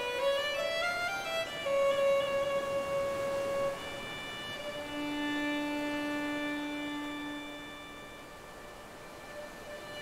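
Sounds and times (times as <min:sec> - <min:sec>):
violin playing slow melody: 0:00.0 - 0:10.0.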